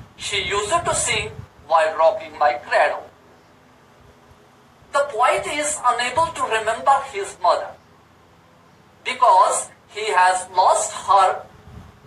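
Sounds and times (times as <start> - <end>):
man speaking: 0.2 - 3.1, 5.0 - 7.8, 9.1 - 11.5.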